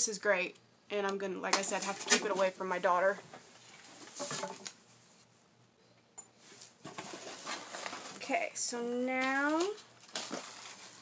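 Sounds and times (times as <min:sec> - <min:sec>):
rustling in cardboard box: 0:06.5 - 0:08.5, 0:10.0 - 0:11.0.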